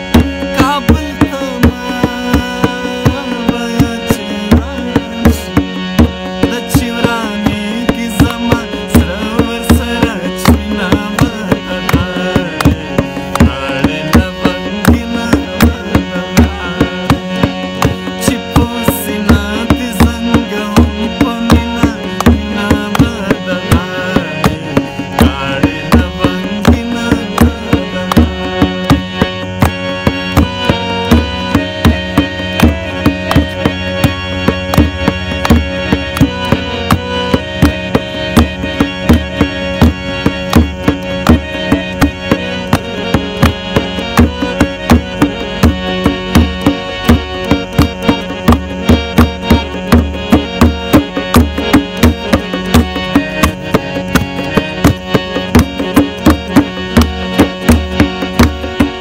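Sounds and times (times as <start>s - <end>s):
harmonium melody: 0.0s - 59.0s
tabla rhythm: 0.0s - 59.0s.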